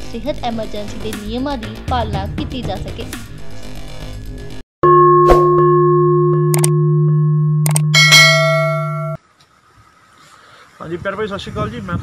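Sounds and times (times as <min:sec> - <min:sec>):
bright bell chime: 0:04.8 - 0:09.2.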